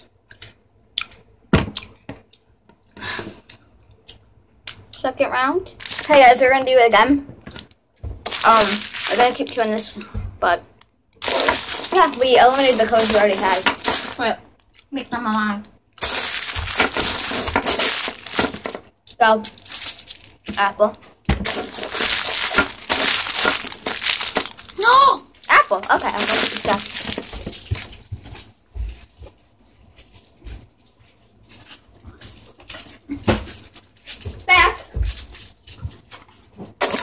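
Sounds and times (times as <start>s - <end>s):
children chewing: 0.0s - 4.8s, 11.1s - 14.9s, 21.5s - 34.4s.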